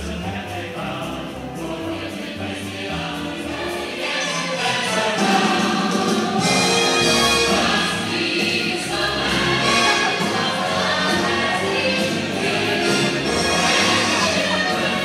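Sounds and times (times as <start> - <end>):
choir singing over loudspeakers: 0.0 - 15.0.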